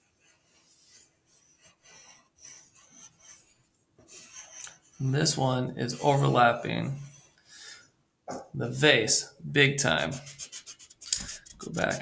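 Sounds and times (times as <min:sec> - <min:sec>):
pencil scratching on paper: 0:00.0 - 0:07.4, 0:09.8 - 0:12.0.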